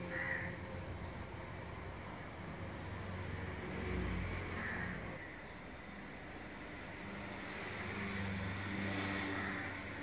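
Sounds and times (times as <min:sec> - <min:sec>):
vehicle engine passing: 0:00.0 - 0:10.0.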